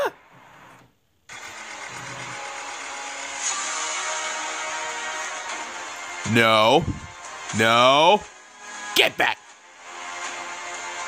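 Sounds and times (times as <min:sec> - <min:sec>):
robot toy mechanical whir: 0:01.3 - 0:03.8.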